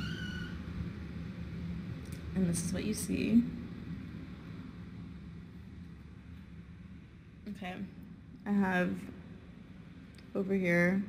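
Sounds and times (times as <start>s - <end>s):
low hum of room noise: 0.0s - 11.0s.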